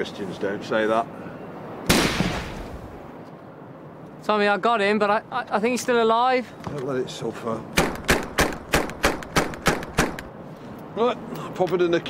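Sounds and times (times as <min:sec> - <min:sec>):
rifle shot: 0:01.9 - 0:02.7, 0:07.8 - 0:10.3.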